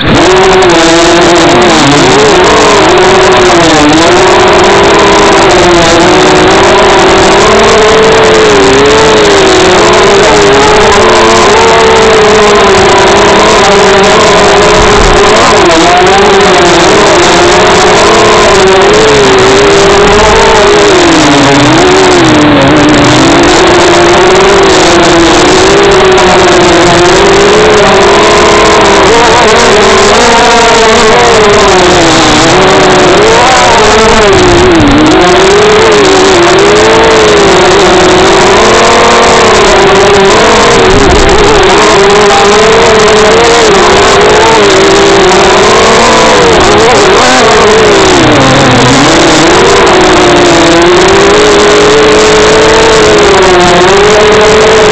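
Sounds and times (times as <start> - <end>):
drone motors buzzing: 0.0 - 54.9.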